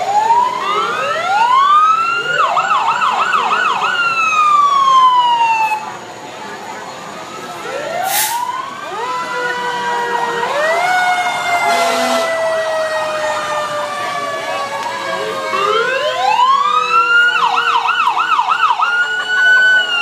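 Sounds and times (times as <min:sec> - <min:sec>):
ambulance siren yelping: 0:00.0 - 0:06.0, 0:07.2 - 0:20.0
fire truck siren wailing: 0:00.0 - 0:20.0.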